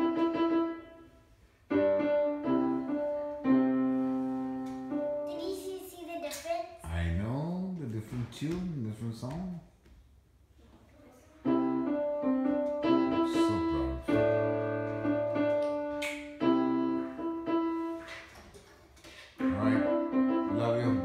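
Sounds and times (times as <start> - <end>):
electronic keyboard melody: 0.0 - 1.0, 1.7 - 5.3, 11.5 - 18.0, 19.4 - 21.0.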